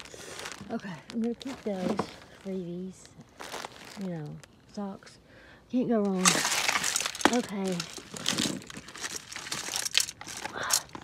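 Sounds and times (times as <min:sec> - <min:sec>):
plastic bags crinkling: 0:00.0 - 0:04.7, 0:06.0 - 0:11.0.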